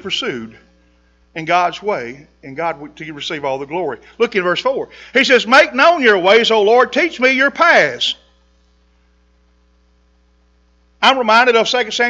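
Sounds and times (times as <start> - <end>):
speech: 0.0 - 0.6, 1.4 - 8.2, 11.0 - 12.0
electrical mains hum: 0.0 - 12.0.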